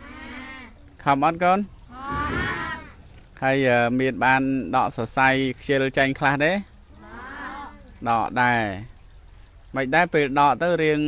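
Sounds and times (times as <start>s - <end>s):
cattle mooing: 2.0s - 3.0s.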